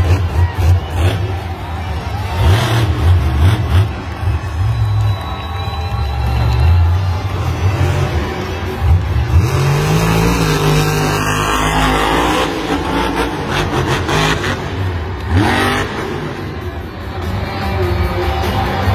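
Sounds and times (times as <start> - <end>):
monster truck engine revving: 0.0 - 18.9.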